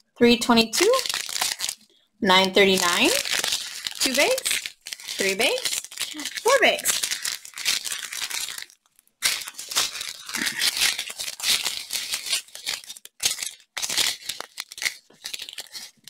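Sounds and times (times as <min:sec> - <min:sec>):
plastic bags crinkling: 0:00.6 - 0:16.0.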